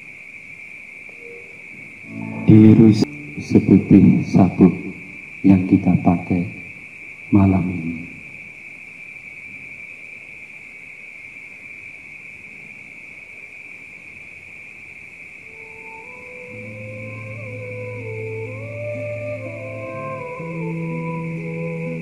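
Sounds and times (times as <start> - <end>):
crickets chirping: 0.0 - 22.0
slow electronic music: 2.0 - 5.2, 16.2 - 22.0.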